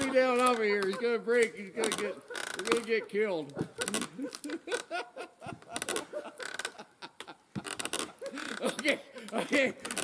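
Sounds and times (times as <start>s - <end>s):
log seesaw creaking: 0.0s - 10.0s
men laughing: 0.0s - 10.0s.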